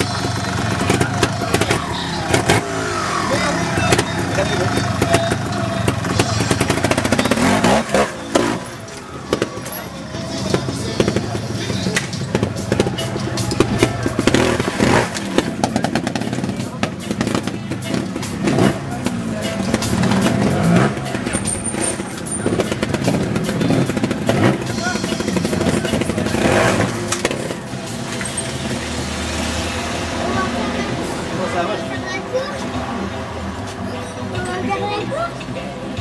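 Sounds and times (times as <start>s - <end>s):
voices talking: 0.0s - 29.0s, 29.7s - 36.0s
motorcycle engine revving: 0.0s - 34.4s.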